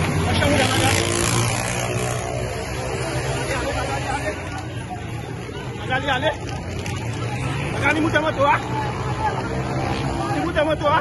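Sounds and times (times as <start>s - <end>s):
crowd noise: 0.0s - 11.0s.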